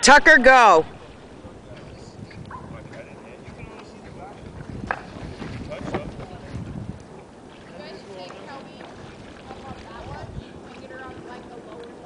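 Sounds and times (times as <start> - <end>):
distant voices calling: 0.0 - 5.6
wind buffeting microphone: 0.0 - 12.0.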